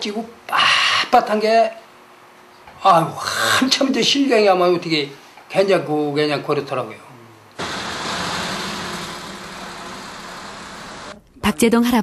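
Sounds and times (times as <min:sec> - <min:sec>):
machine running hum and hiss: 0:07.5 - 0:11.2.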